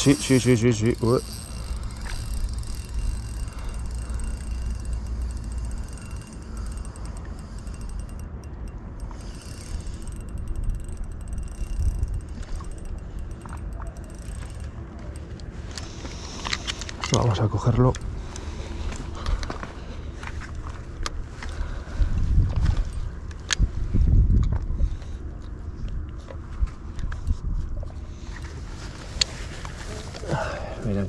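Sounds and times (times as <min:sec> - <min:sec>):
fishing reel whirring and ticking: 0:00.0 - 0:19.0, 0:21.0 - 0:23.6, 0:28.1 - 0:29.8
low steady rumble: 0:00.0 - 0:31.0.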